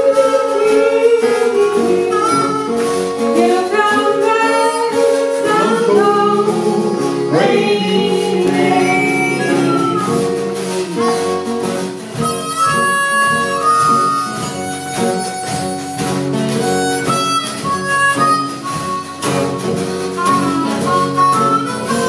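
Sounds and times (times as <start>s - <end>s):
blues harmonica solo: 0.0s - 22.0s
hand drum beat: 0.0s - 22.0s
strummed acoustic guitar: 0.0s - 22.0s.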